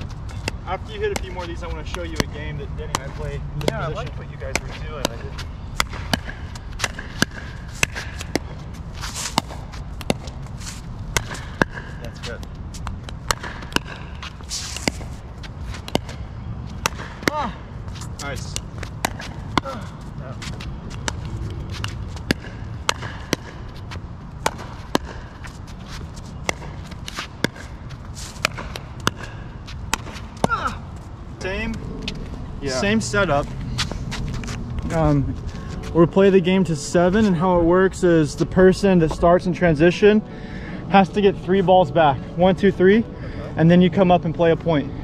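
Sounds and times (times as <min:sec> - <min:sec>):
steady low rumble: 0:00.0 - 0:45.0
ball bouncing on hard court: 0:00.3 - 0:10.4, 0:11.1 - 0:25.6, 0:26.4 - 0:30.7
pickleball struck by paddles: 0:00.4 - 0:08.6, 0:09.2 - 0:10.4, 0:11.1 - 0:15.2, 0:15.8 - 0:17.5, 0:18.5 - 0:19.8, 0:20.9 - 0:25.5, 0:26.4 - 0:30.7.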